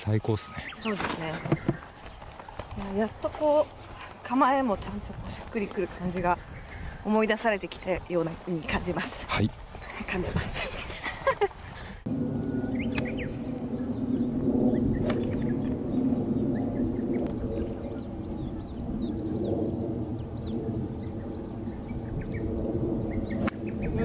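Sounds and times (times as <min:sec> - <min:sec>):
birds chirping: 0:00.0 - 0:24.0
low rumble: 0:02.5 - 0:24.0.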